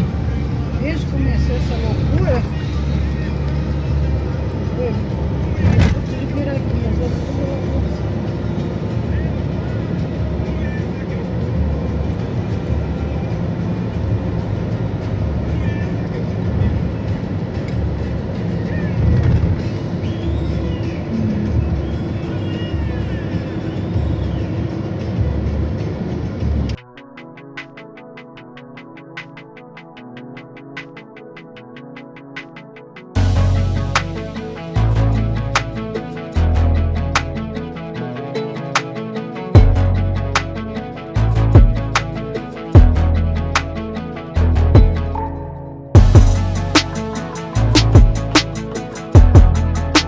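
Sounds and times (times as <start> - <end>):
road and drivetrain noise: 0.0 - 26.8, 32.0 - 50.0
thump: 5.6 - 6.1.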